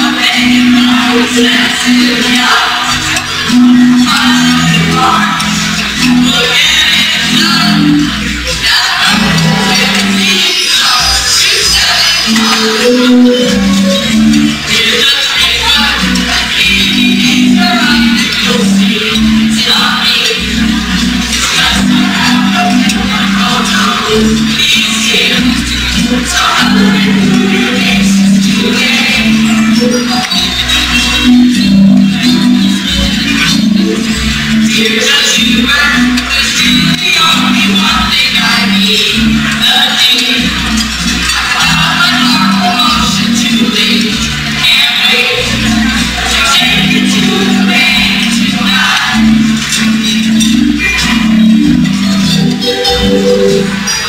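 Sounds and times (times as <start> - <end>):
choir singing: 0.0 - 54.0
guitar: 0.0 - 54.0.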